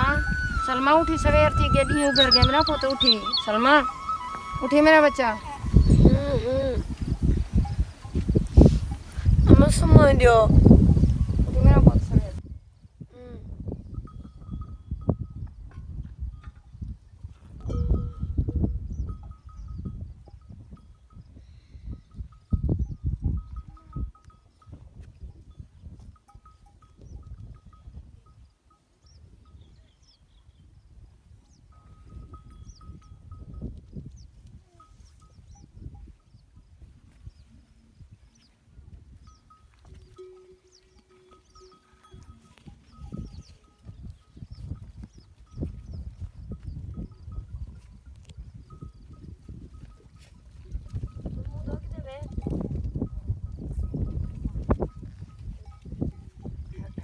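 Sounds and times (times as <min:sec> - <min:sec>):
small birds chirping: 0:00.0 - 0:14.1, 0:28.3 - 0:33.3, 0:34.0 - 0:47.5
wind buffeting microphone: 0:00.0 - 0:57.0.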